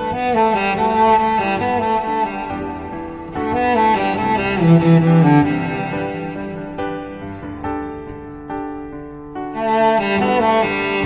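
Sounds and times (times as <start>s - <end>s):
cello playing slow melody: 0.0s - 11.0s.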